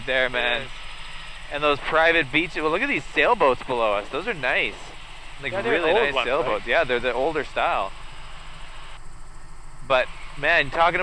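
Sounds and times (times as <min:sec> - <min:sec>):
helicopter drone from cabin: 0:00.0 - 0:11.0.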